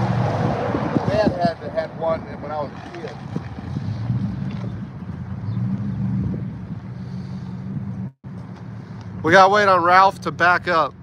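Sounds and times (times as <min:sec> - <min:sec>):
wind noise on microphone: 0:00.0 - 0:08.1.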